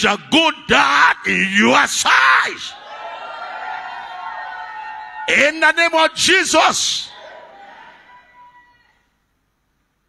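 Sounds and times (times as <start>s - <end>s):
man shouting through pa: 0.7s - 2.7s.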